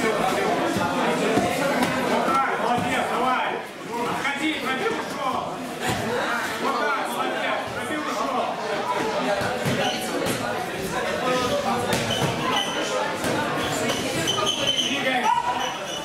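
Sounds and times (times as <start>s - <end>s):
voices calling out and chattering: 0.0s - 16.0s.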